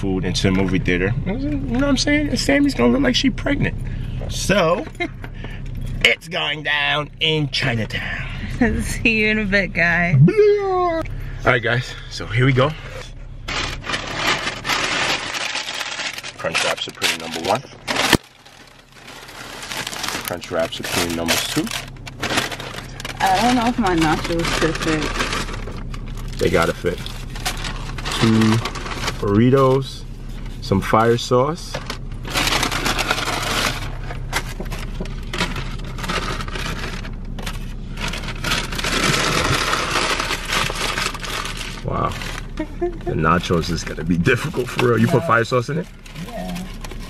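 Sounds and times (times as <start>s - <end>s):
car engine hum: 0.0s - 47.0s
paper wrappers rustling: 13.5s - 47.0s.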